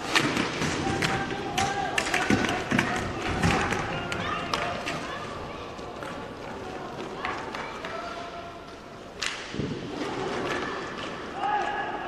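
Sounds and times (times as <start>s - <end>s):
hockey sticks and puck clacking: 0.0s - 12.0s.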